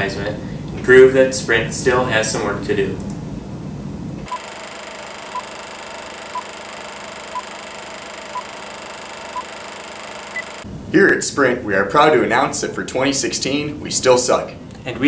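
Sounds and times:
short beeps: 4.3s - 4.5s, 5.3s - 5.5s, 6.3s - 7.6s, 8.2s - 10.6s
higher-pitched beep: 5.3s - 10.6s.

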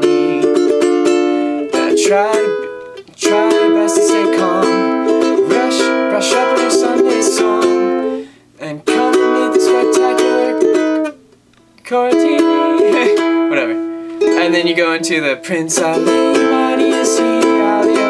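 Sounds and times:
ukulele strumming chords: 0.0s - 18.0s.

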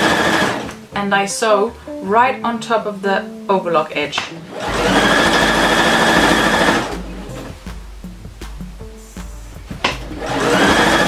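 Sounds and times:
electric sewing machine running: 0.0s - 0.7s, 4.5s - 7.5s, 10.2s - 11.0s.

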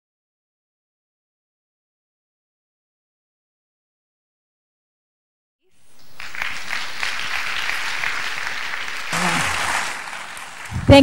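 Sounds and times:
audience applauding: 6.0s - 11.0s
person speaking: 9.1s - 9.9s, 10.7s - 11.0s.

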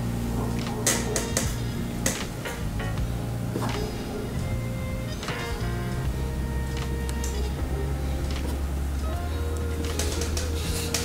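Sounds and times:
background music with bass: 0.0s - 11.0s.

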